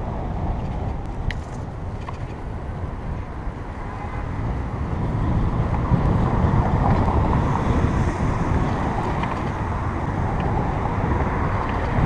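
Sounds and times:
road traffic noise: 0.0 - 12.0
wind rumbling on microphone: 0.0 - 12.0.

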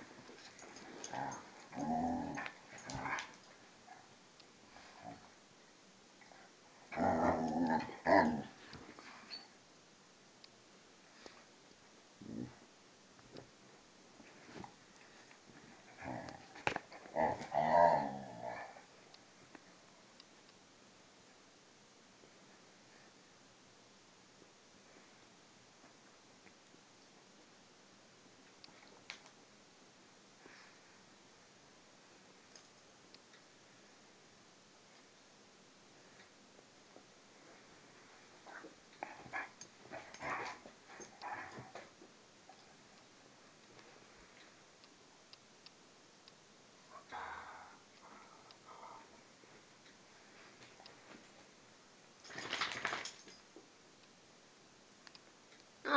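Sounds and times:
dogs growling: 0.9 - 3.4, 6.9 - 8.6, 15.9 - 18.8, 38.5 - 41.8.

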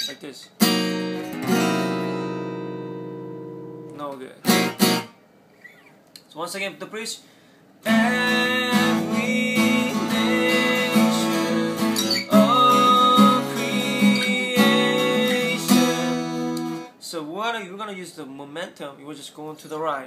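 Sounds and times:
acoustic guitar strumming: 0.6 - 5.2, 7.8 - 17.0.

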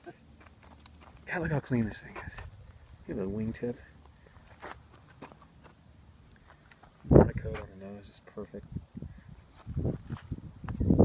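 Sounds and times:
footsteps on dry dirt: 0.3 - 5.8, 9.5 - 10.9.

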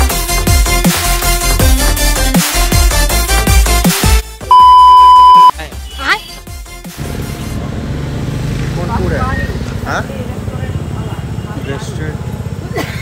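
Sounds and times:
music: 0.0 - 7.6
loud electronic bleep: 4.5 - 5.5.

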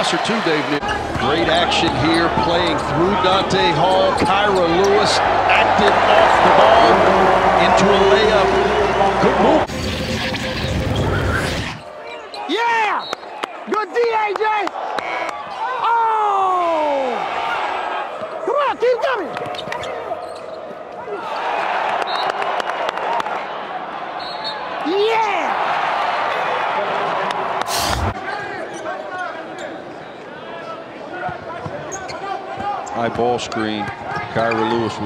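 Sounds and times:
crowd cheering: 0.0 - 9.7, 11.0 - 28.8
hands clapping: 14.2 - 15.4.

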